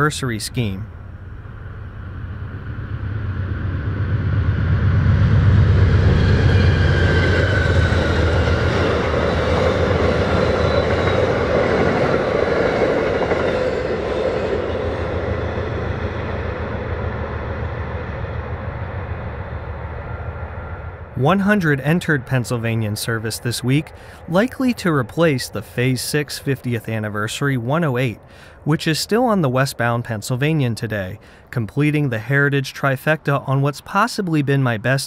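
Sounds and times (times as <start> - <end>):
train passing: 0.0 - 35.0.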